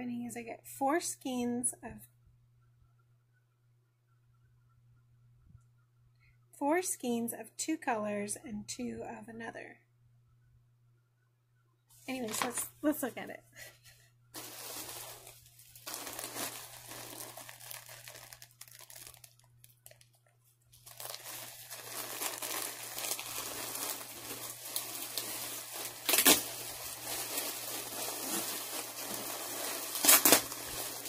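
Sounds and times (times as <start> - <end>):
packaging rustling and crinkling: 12.1 - 12.7, 14.4 - 31.0.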